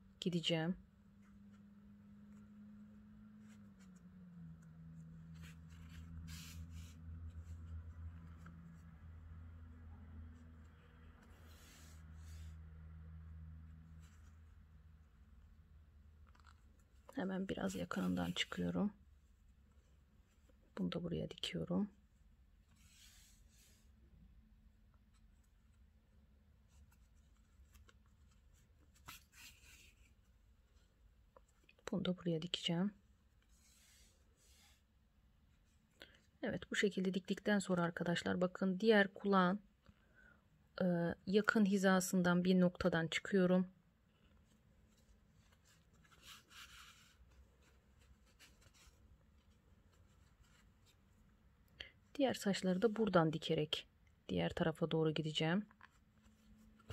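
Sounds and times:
yarn rustling through fabric: 0.8s - 24.0s, 24.7s - 36.0s, 44.1s - 53.2s.

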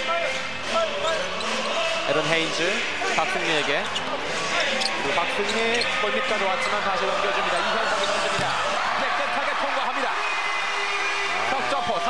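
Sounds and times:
voices in arena: 0.0s - 12.0s.

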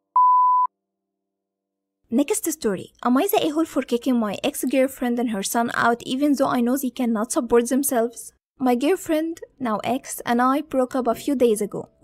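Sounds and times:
steady electronic test tone beep: 0.2s - 0.7s.

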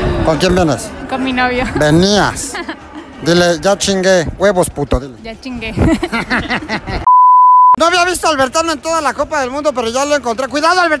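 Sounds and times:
censor bleep: 7.1s - 7.8s.

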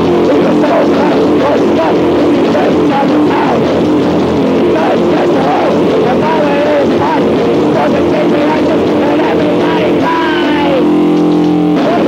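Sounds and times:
distorted electric guitar: 0.0s - 12.0s
person shouting vocals: 7.8s - 10.9s.

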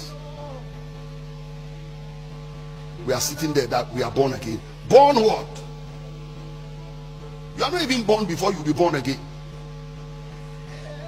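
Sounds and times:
drone of held tones: 0.0s - 11.0s.

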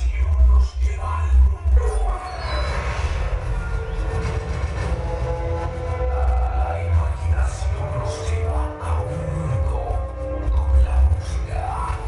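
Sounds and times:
music with heavy bass: 0.0s - 12.0s.

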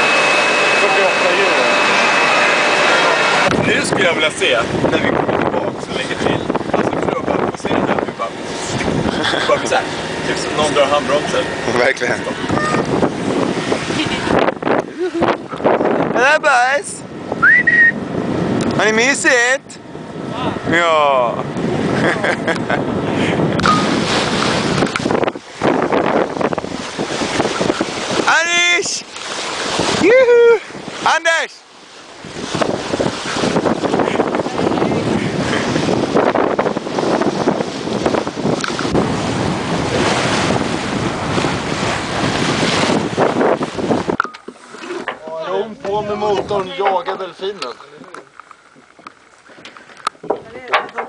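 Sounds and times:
wind buffeting microphone: 0.0s - 31.1s, 32.1s - 49.1s
water rushing along hull: 0.0s - 51.0s.

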